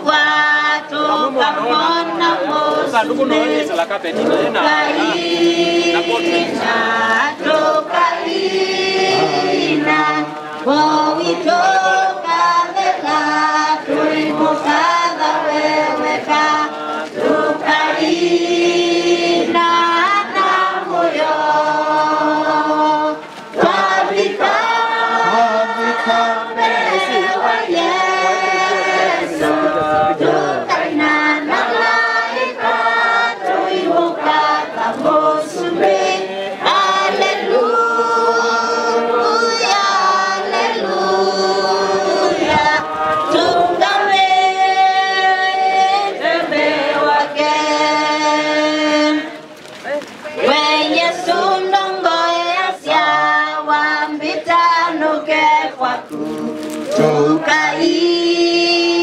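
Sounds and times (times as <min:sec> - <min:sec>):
choir singing: 0:00.0 - 0:49.4, 0:50.4 - 0:59.0.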